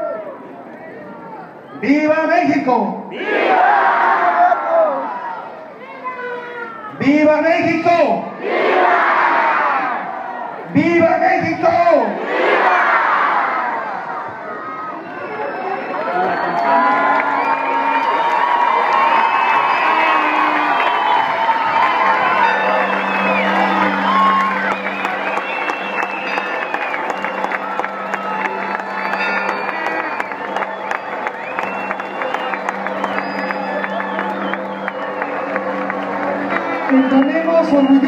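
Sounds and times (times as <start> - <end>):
crowd cheering and shouting: 0.0 - 38.0.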